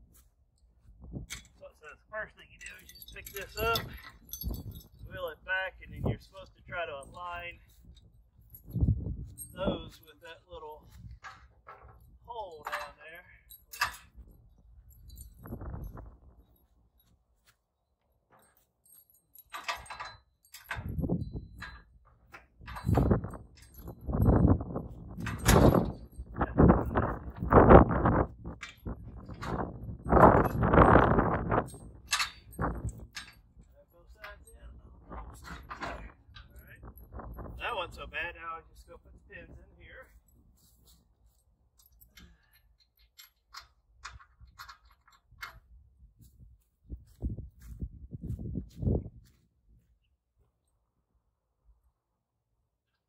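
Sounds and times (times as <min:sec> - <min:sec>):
metal knocks clanks and rattles: 0:01.1 - 0:16.7, 0:18.3 - 0:40.4, 0:41.8 - 0:46.3.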